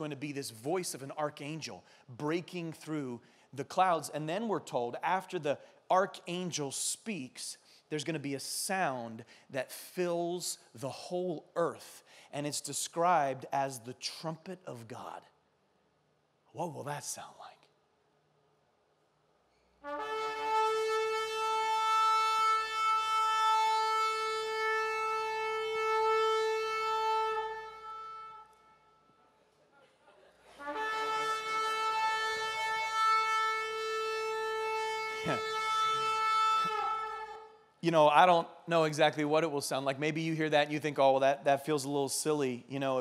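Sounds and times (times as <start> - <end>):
long horn blast: 19.8 - 29.1, 30.5 - 37.6.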